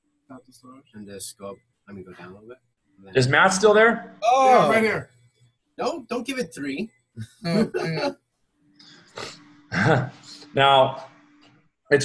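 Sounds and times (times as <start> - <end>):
short vocal bursts: 7.2 - 8.1.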